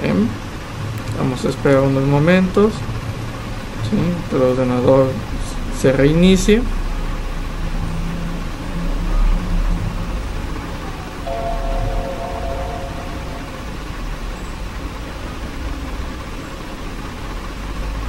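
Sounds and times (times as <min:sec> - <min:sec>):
steady background hum: 0:10.2 - 0:15.4
computer startup chime: 0:11.3 - 0:14.5.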